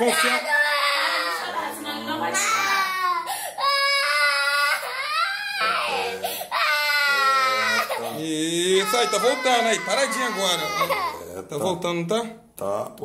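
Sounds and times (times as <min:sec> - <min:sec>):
boy crying and wailing: 0:00.0 - 0:01.6, 0:02.3 - 0:11.4.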